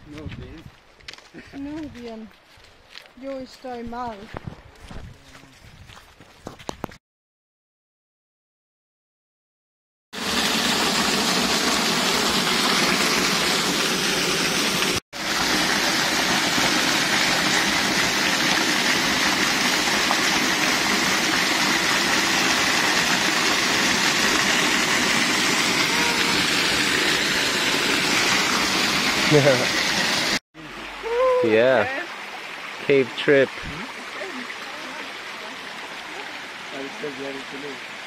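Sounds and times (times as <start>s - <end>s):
waterfall rushing: 10.2s - 38.0s.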